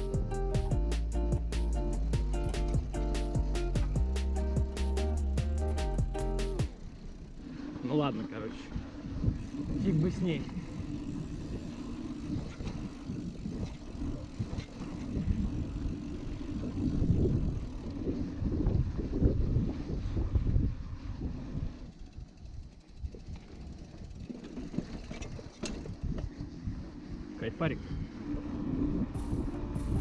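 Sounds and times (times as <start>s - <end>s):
bike tyres rolling on dirt track: 0.0s - 29.9s
wind buffeting microphone: 6.0s - 30.0s.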